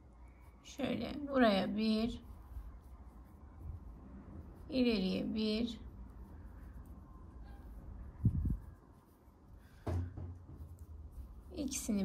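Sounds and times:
crochet hook and yarn rustling: 0.0s - 12.0s
low steady hum: 0.0s - 12.0s
low thump: 9.8s - 10.6s.

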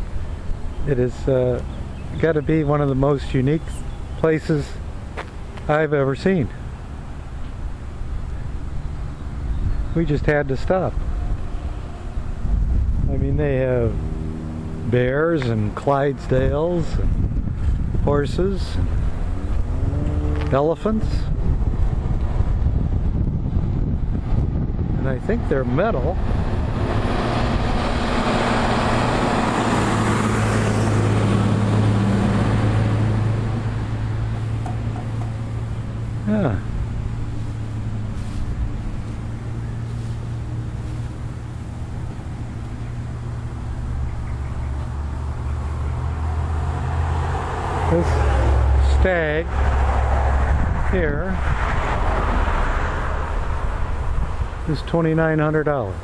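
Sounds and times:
road traffic hum: 0.0s - 56.0s
vehicle approaching: 0.0s - 56.0s
wind buffeting microphone: 9.4s - 48.8s, 49.5s - 56.0s.

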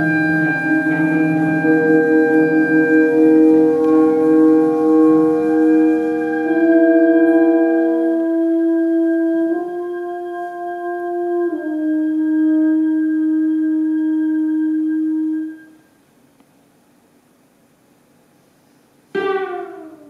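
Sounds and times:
winds and strings sustained notes: 0.0s - 15.6s, 19.2s - 20.0s.

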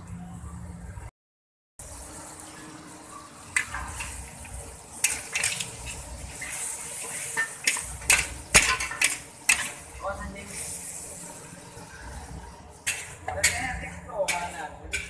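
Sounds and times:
food sizzling: 1.8s - 15.0s
metal spatula scraping a wok: 5.0s - 11.1s, 11.8s - 15.0s.

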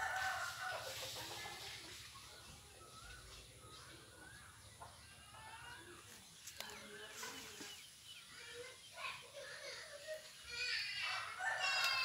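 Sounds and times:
faint bird chirping: 0.7s - 12.0s.

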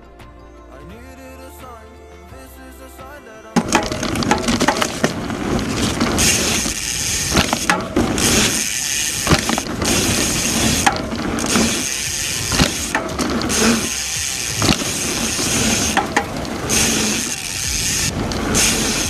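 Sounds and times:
bike frame rattle: 3.6s - 19.0s
bike landing knocks: 3.6s - 19.0s
bike tyres rolling on dirt: 3.6s - 19.0s
freehub ratchet buzzing: 3.6s - 19.0s.

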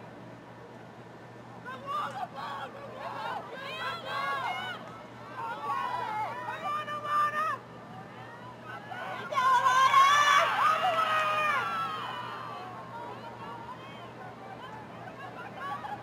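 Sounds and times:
people shouting: 9.0s - 12.6s.

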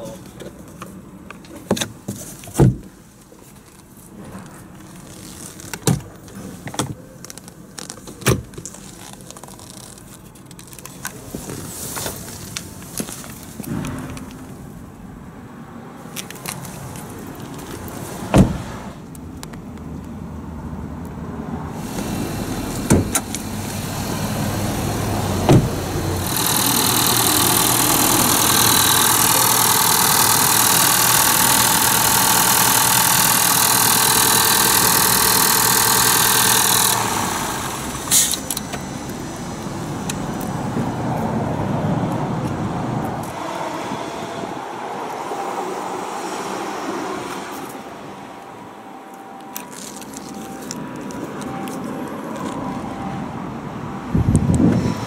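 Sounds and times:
hissing whir of engine: 21.6s - 41.2s
sharp clicks: 26.2s - 37.1s.

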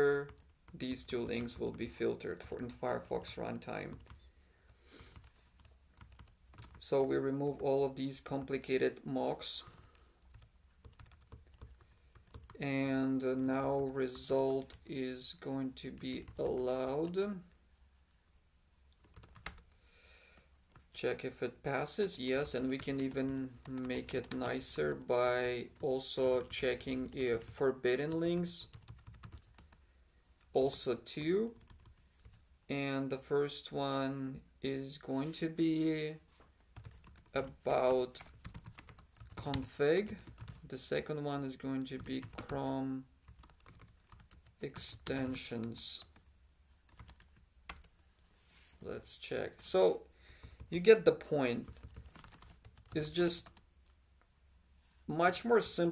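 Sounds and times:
computer keyboard keystrokes: 0.2s - 1.8s, 5.1s - 6.8s, 9.6s - 12.6s, 19.0s - 19.8s, 22.5s - 24.8s, 28.7s - 29.8s, 31.6s - 32.4s, 36.8s - 37.6s, 38.2s - 40.6s, 41.9s - 42.6s, 43.2s - 45.4s, 46.9s - 47.9s, 51.7s - 53.6s.

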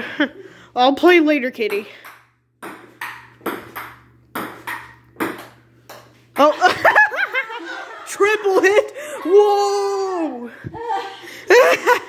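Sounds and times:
table tennis ball clicking: 1.6s - 6.1s.

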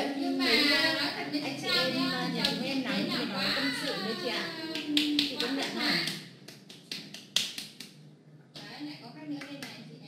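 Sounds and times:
person talking: 0.0s - 6.2s.

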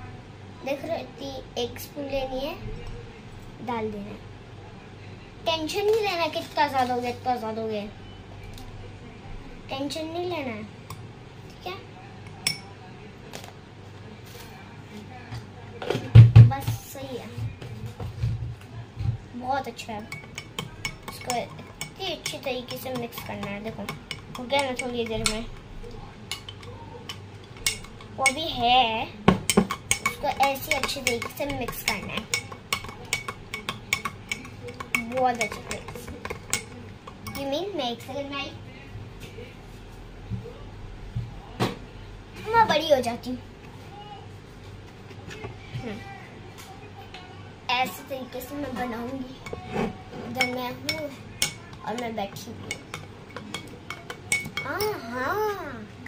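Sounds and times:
spoon clinking against glass: 20.1s - 25.6s, 26.3s - 28.4s, 29.5s - 37.5s, 52.7s - 54.9s.

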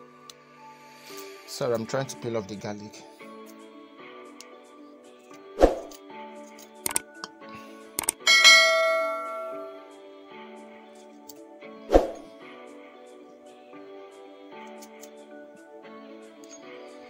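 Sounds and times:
background music: 0.0s - 17.0s
click: 6.8s - 7.4s, 8.0s - 8.2s
bright bell ding: 8.3s - 9.9s.

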